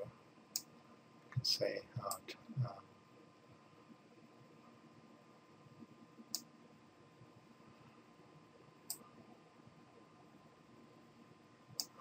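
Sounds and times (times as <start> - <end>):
computer mouse clicks: 11.8 - 12.0.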